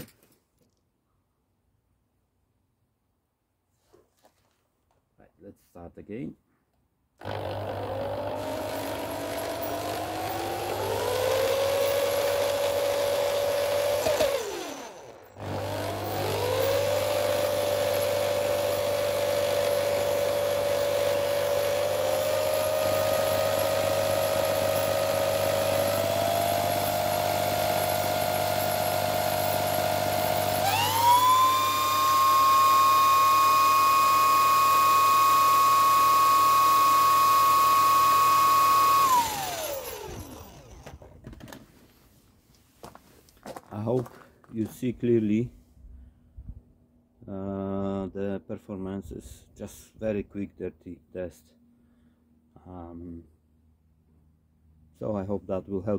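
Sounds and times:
electric drill whining: 7.2 - 41.6.

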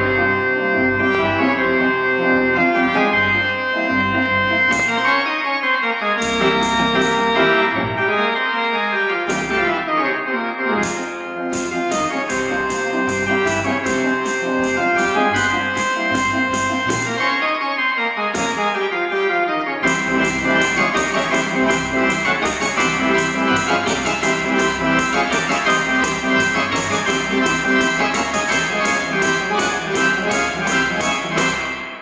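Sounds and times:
electronic organ chords: 0.0 - 32.0.

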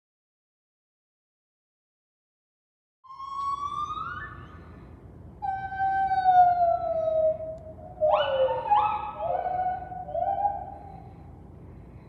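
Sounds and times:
gibbons calling: 3.1 - 4.6, 5.4 - 11.2.

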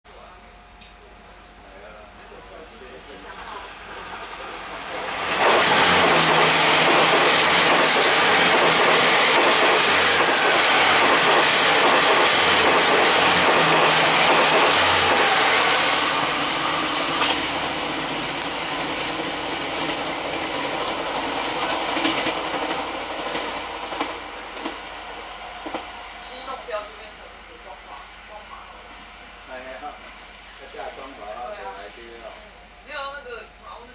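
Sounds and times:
diesel train passing close by: 0.1 - 33.9.

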